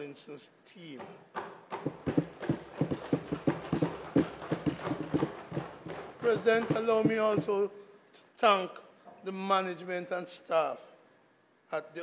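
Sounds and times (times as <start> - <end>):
hands thumping on wooden desks: 1.0 - 7.6.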